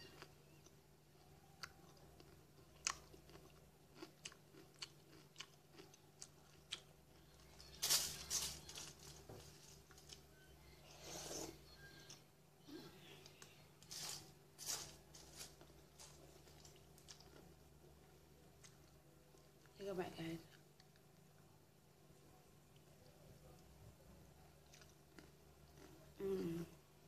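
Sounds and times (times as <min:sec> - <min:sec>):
chewing and crunching cereal: 0:00.0 - 0:12.3, 0:13.2 - 0:19.8, 0:24.4 - 0:26.4.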